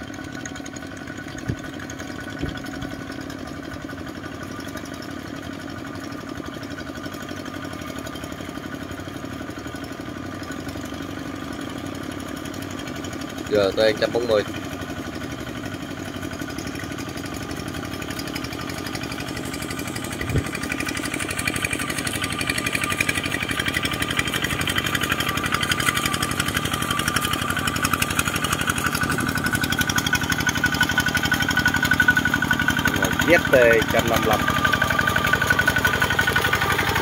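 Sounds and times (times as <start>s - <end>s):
diesel tractor engine running: 0.0s - 37.0s.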